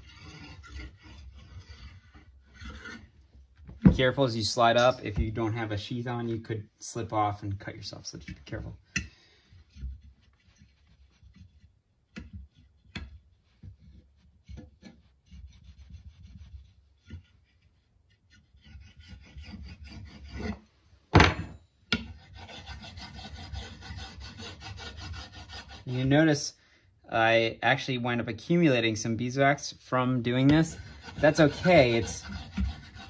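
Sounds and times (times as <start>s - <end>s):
steel tool scraping wood: 0.0s - 3.2s, 13.6s - 20.7s, 22.0s - 26.2s, 30.0s - 33.0s.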